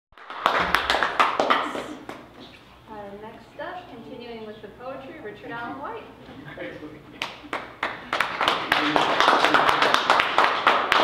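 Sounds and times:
audience clapping: 0:00.1 - 0:02.3, 0:07.2 - 0:11.0.

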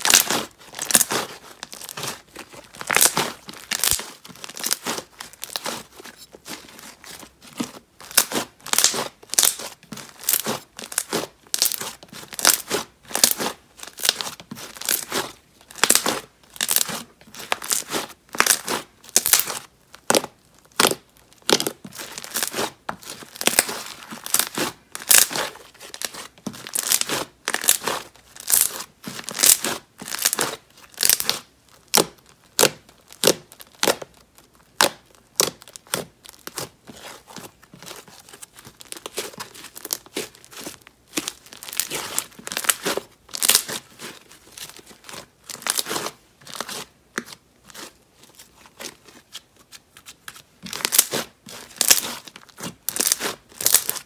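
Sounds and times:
slime squishing: 0:00.0 - 0:54.0.

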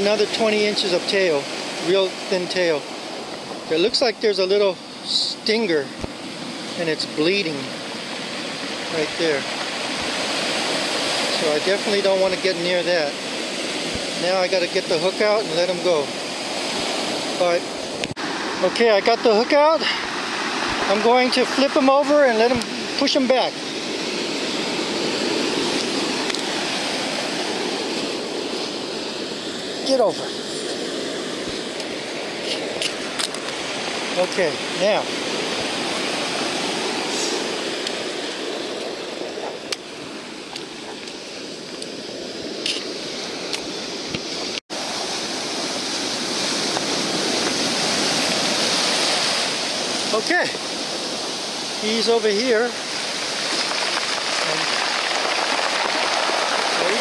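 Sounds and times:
surf washing over sand: 0:00.0 - 0:57.0.

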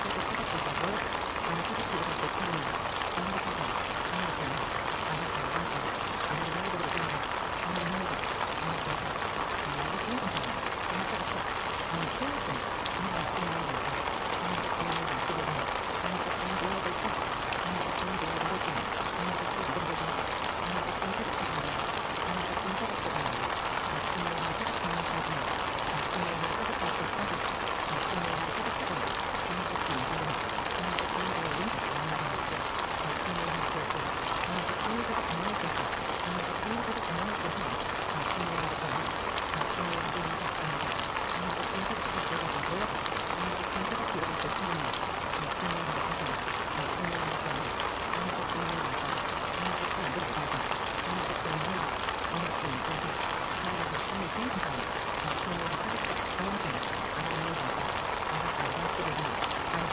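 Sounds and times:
faint murmuring voices: 0:00.0 - 0:59.9.

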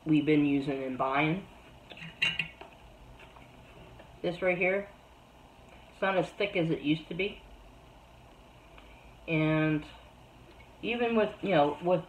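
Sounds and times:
metal lids clinking: 0:01.9 - 0:02.6.

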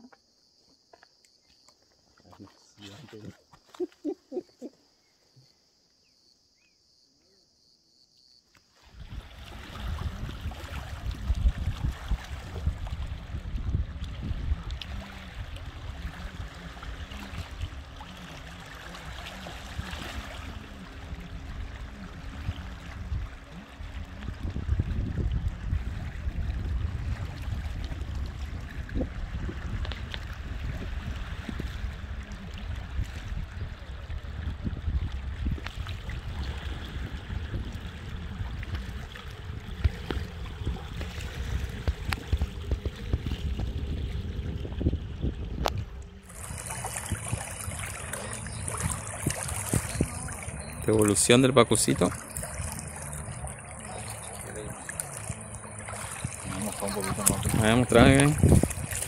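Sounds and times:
small waves lapping riverbank: 0:00.0 - 0:06.0, 0:08.4 - 0:59.0
wind buffeting microphone: 0:09.0 - 0:18.2, 0:19.8 - 0:59.0.

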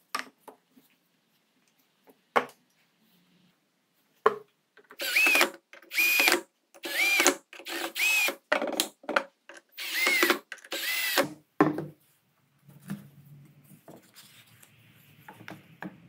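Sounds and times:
cordless drill driving screws: 0:05.0 - 0:08.4, 0:09.8 - 0:11.4.

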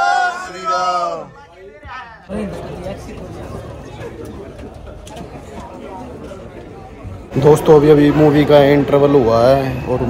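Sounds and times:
chatter of overlapping voices: 0:00.0 - 0:10.0.

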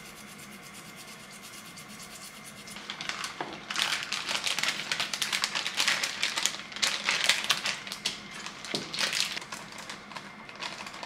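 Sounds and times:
fast rubbing strokes: 0:00.0 - 0:03.0.

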